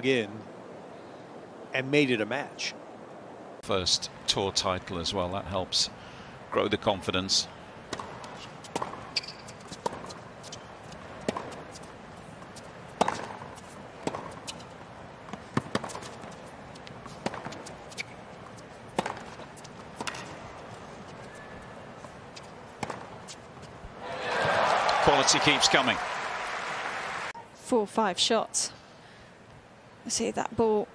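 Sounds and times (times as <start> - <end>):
tennis ball struck with rackets: 7.9 - 10.2, 11.2 - 11.6, 13.0 - 14.6, 15.3 - 16.4, 17.2 - 18.1, 18.9 - 19.4, 20.0 - 20.4, 22.8 - 23.2
hushed stadium crowd: 24.0 - 27.5.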